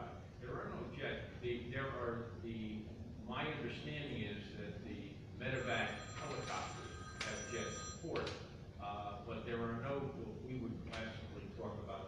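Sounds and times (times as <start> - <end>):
electronic ringing tone: 5.5 - 8.2.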